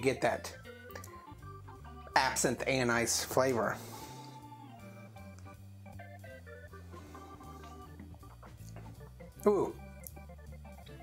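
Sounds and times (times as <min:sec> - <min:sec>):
sustained keyboard chords: 0:00.0 - 0:11.0.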